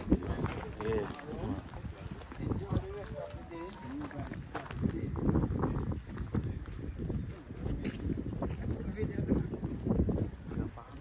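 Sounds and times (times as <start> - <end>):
footstep scuffs and clicks: 0.0 - 11.0
people talking indistinctly: 0.0 - 11.0.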